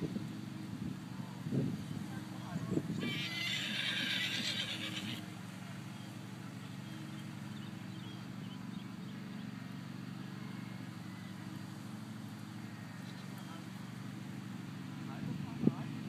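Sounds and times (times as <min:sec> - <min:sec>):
horse whinnying: 0:03.0 - 0:05.2.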